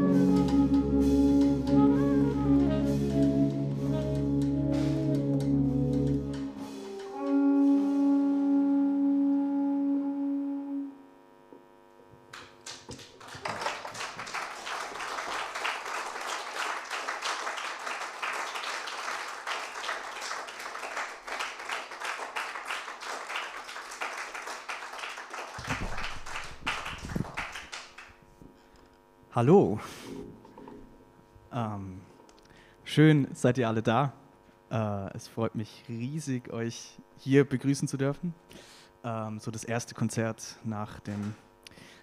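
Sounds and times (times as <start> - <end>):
jazz quartet chord with saxophone: 0.0 - 11.0
audience applauding: 12.3 - 28.2.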